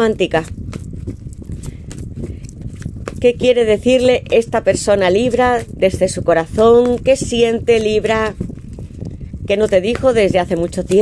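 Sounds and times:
cards being shuffled by hand: 0.0s - 11.0s.

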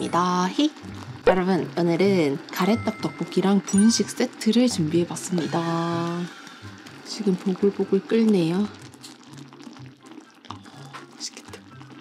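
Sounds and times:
sauce bubbling with soft pops: 6.4s - 12.0s.

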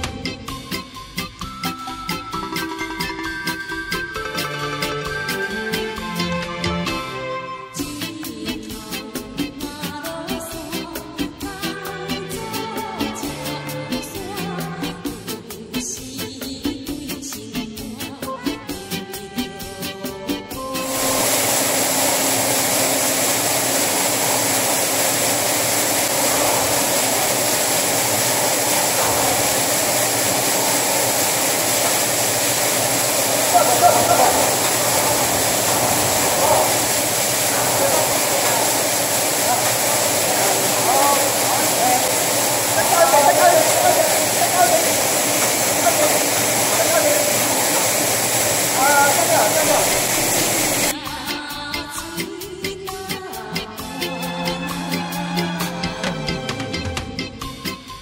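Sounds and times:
grain auger conveyor running: 20.8s - 51.0s
people talking: 26.0s - 30.9s, 32.8s - 48.1s, 48.7s - 50.9s.

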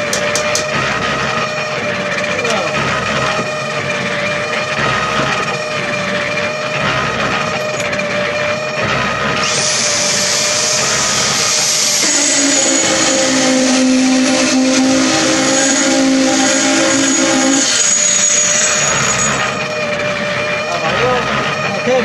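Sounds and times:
concrete vibrator motor whine: 0.0s - 22.0s.

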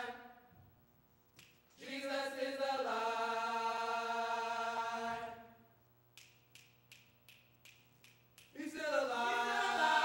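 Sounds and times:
faint finger snaps: 1.3s - 1.6s, 6.1s - 8.6s.

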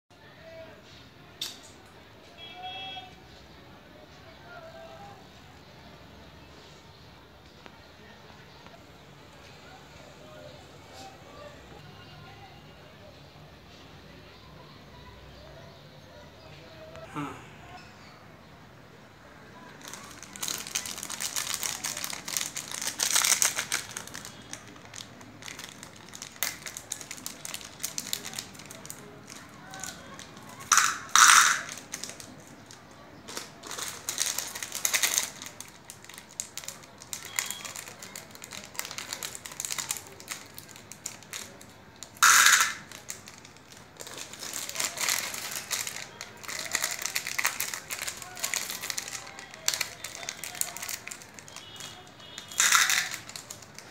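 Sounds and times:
plastic sweet packet crinkling: 19.6s - 53.9s.

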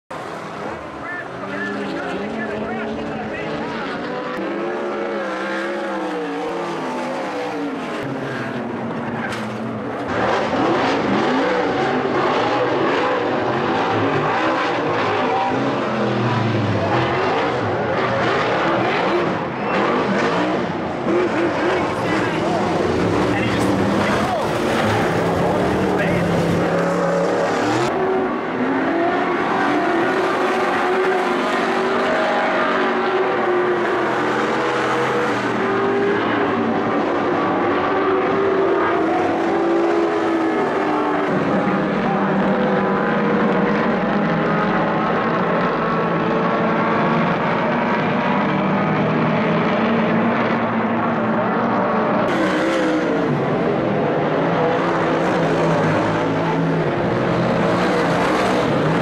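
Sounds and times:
race car engines revving: 0.1s - 59.0s.

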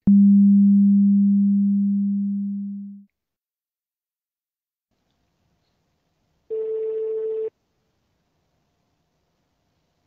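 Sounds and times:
low electronic tone: 0.0s - 3.0s.

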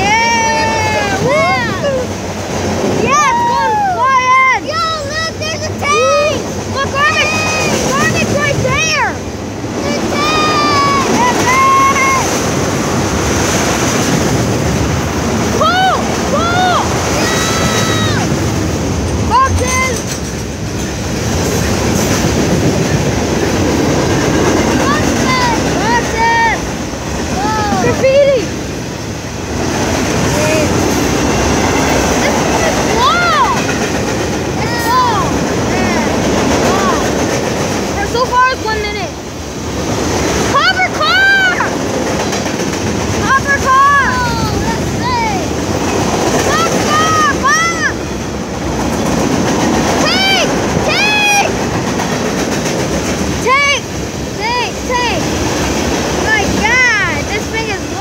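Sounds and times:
train wheels rumbling on rails: 0.0s - 58.0s
clickety-clack over rail joints: 1.0s - 58.0s.

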